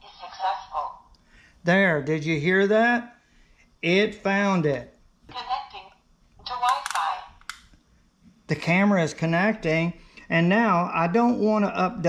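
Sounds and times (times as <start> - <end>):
sharp clicks: 6.6 - 7.7.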